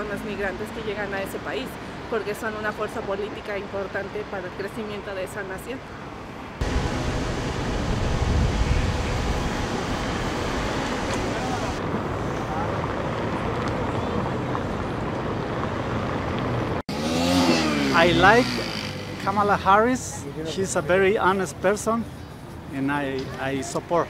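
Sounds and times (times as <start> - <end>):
cars going by: 6.0 - 24.0.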